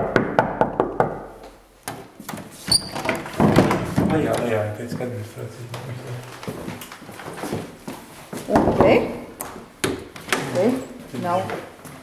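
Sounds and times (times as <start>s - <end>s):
knocking on wooden door: 0.0s - 1.4s, 8.5s - 9.1s.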